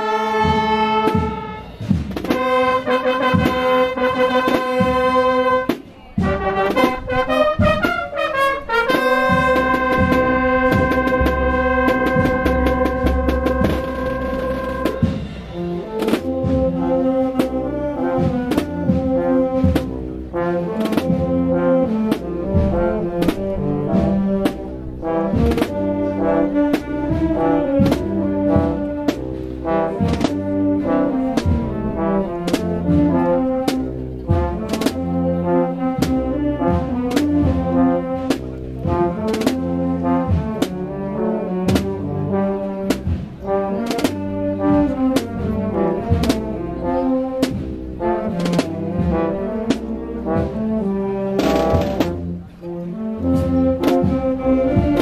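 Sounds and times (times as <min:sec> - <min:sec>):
brass band playing: 0:00.0 - 0:55.0
snare and bass drums beat: 0:00.2 - 0:52.5, 0:53.2 - 0:55.0.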